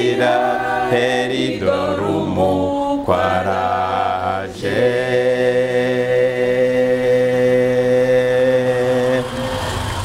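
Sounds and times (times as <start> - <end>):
mixed choir singing in harmony: 0.0 - 10.0.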